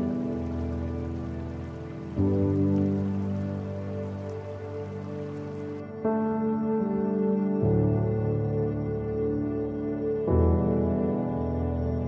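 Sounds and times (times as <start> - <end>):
rain-like hiss: 0.0 - 5.8
calm ambient music: 0.0 - 12.0.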